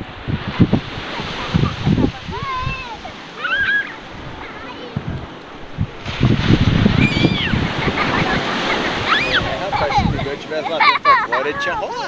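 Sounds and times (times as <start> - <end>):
surf washing onto beach: 0.0 - 12.0
small child calling: 1.2 - 5.1.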